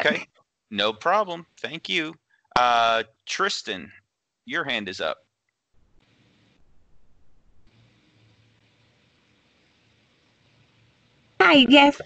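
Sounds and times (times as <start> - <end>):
faint hiss: 0.0 - 3.9, 4.5 - 5.2, 6.0 - 12.0
low hum: 6.6 - 10.8.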